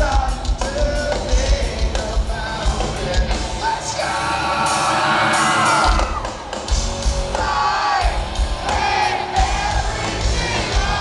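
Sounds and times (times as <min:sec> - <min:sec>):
live hard rock band: 0:00.0 - 0:11.0
crowd cheering and yelling: 0:03.2 - 0:11.0.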